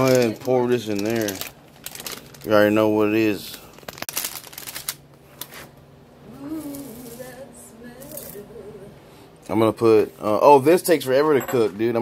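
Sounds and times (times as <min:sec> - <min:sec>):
plastic bag crinkling: 0:00.0 - 0:05.7.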